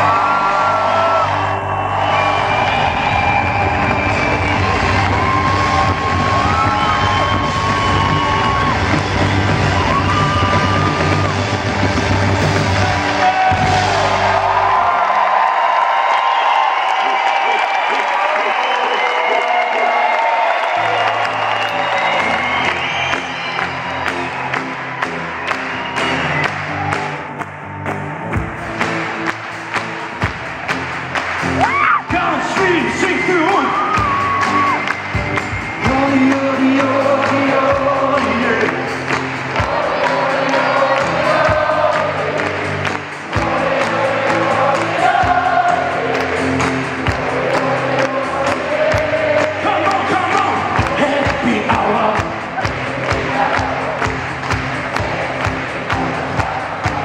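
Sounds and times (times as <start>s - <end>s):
crowd cheering: 0.0s - 57.0s
live band playing: 3.0s - 14.4s
man singing: 35.8s - 38.9s, 48.9s - 52.4s
audience singing along: 39.5s - 50.0s, 52.6s - 54.1s.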